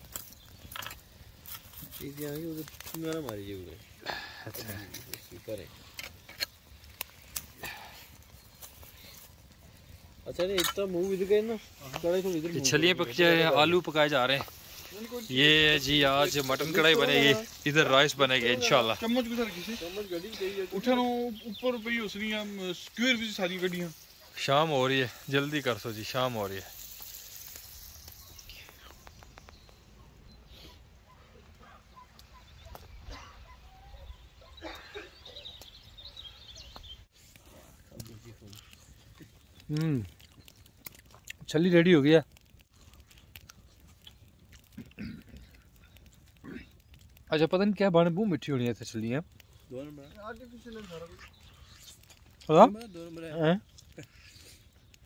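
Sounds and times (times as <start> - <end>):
dog barking: 31.1 - 35.4.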